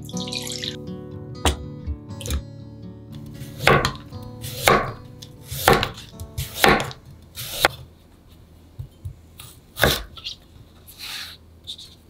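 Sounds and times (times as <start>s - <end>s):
knife chopping on wooden board: 3.5s - 7.8s, 9.8s - 10.2s.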